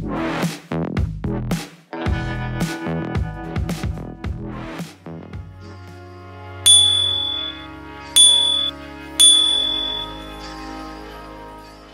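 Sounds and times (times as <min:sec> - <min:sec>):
bright ding sound effects: 0:06.7 - 0:07.6, 0:08.2 - 0:10.2.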